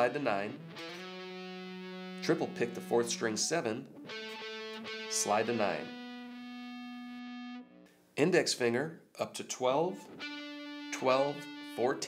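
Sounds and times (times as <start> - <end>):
distorted electric guitar note: 0.0 - 7.8, 10.1 - 12.0.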